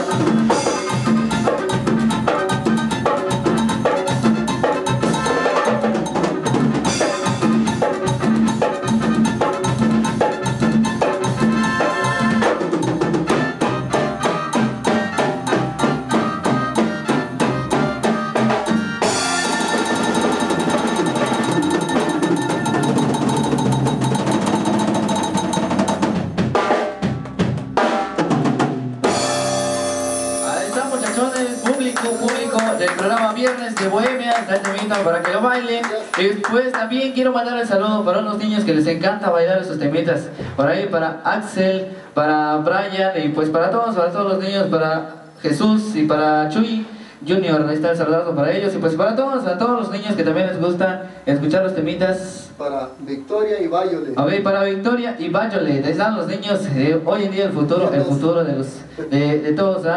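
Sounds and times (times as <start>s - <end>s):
drum kit quick steady beat: 0.0s - 36.9s
live band playing: 0.0s - 39.0s.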